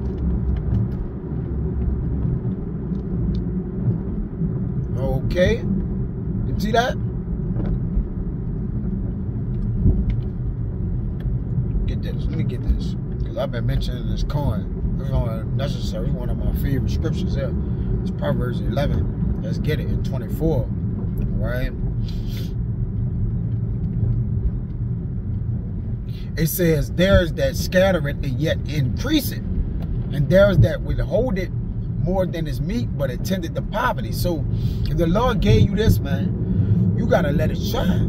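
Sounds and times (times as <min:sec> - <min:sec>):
car cabin road rumble: 0:00.0 - 0:38.0.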